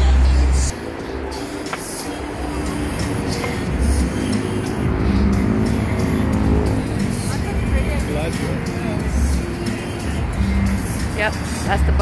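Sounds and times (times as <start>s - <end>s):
cars passing: 0.0s - 12.0s
music playing: 0.0s - 12.0s.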